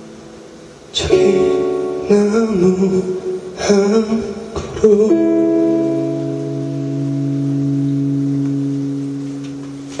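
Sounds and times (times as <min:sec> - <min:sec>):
keyboard chord sustaining: 0:05.2 - 0:10.0.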